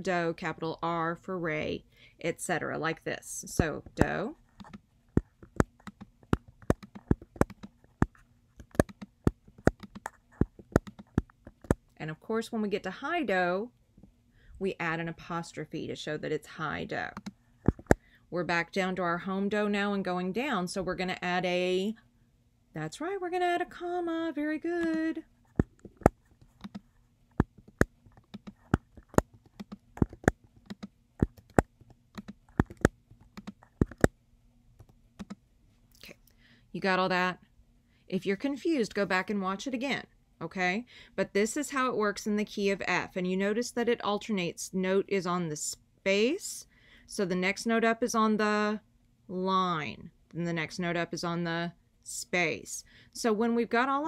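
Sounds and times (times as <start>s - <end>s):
computer keyboard key clicks: 5.5s - 7.7s, 8.6s - 11.8s, 26.0s - 26.8s, 27.7s - 34.1s, 34.8s - 35.4s.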